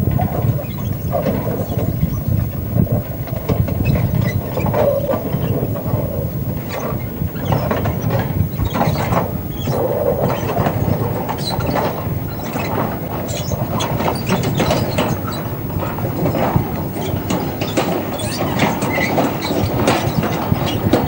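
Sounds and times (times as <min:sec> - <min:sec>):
train rumbling: 0:00.0 - 0:21.0.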